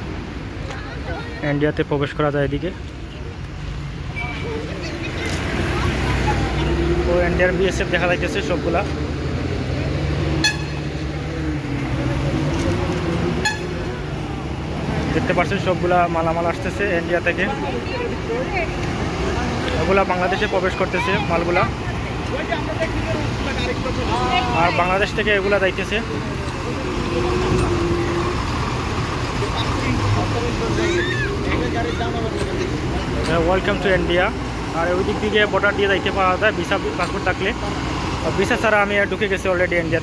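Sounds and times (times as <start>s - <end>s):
truck engines rumbling: 0.0s - 40.0s
vehicle horn toots: 10.4s - 10.9s, 13.4s - 13.9s.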